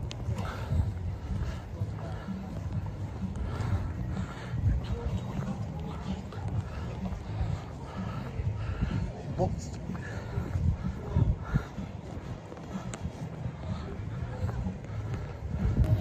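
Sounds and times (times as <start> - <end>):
faint voices: 0.0 - 16.0
footsteps on brick paving: 0.0 - 16.0
wind buffeting microphone: 0.0 - 16.0.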